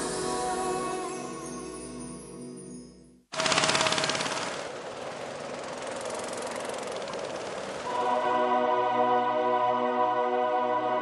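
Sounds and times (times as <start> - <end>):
rapid rattling: 3.4 - 7.9.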